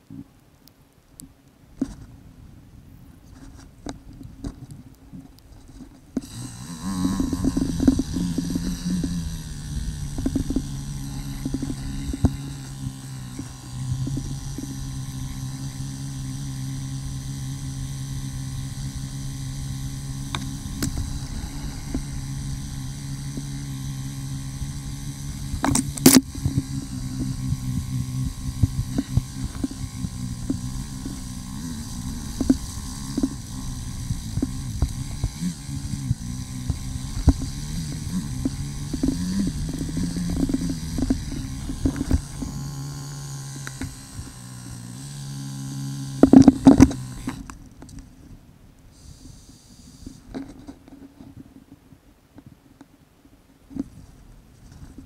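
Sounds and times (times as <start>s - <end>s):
bike knocks and rattles: 5.2s - 16.5s
dirt bike engine running: 5.5s - 47.8s.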